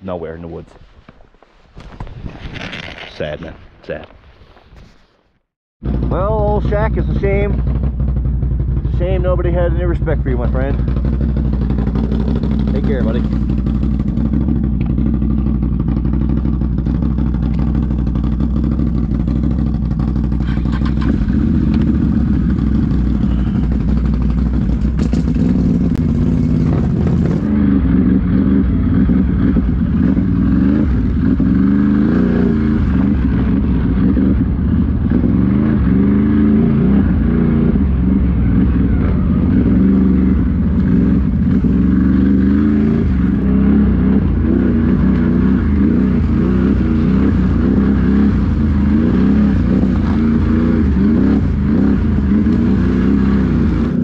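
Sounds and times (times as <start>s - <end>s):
quad engine revving: 5.8s - 54.0s.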